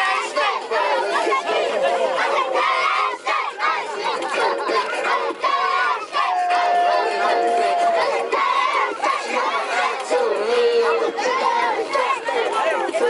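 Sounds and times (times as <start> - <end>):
young players shouting and chanting: 0.0 - 13.0.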